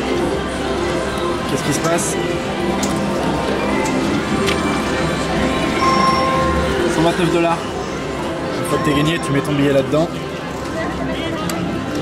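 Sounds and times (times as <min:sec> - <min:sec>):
electronic slot machine tones: 0:05.8 - 0:07.2, 0:08.6 - 0:09.7.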